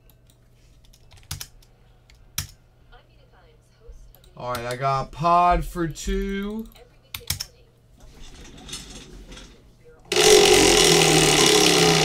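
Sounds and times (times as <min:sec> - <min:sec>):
keyboard and mouse clicks: 0:00.0 - 0:02.6, 0:06.2 - 0:07.5
low hum: 0:08.2 - 0:12.0.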